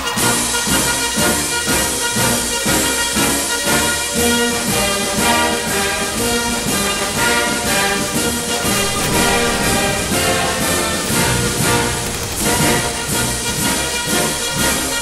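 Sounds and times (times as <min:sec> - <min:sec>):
brass band march music: 0:00.0 - 0:15.0.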